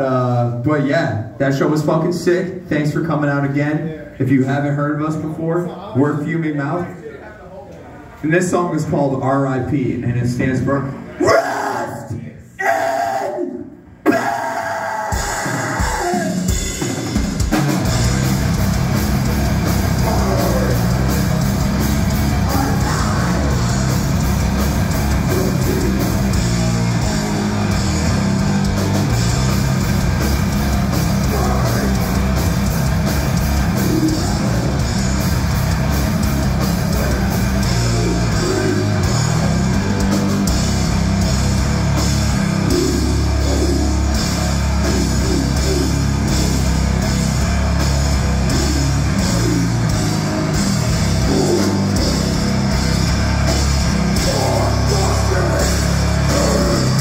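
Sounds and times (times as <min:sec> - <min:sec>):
death metal band playing: 0:14.1 - 0:57.0.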